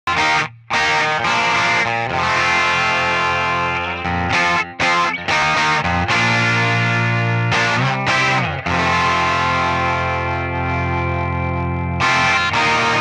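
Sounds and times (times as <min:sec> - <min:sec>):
electric guitar chords and notes: 0:00.0 - 0:13.0.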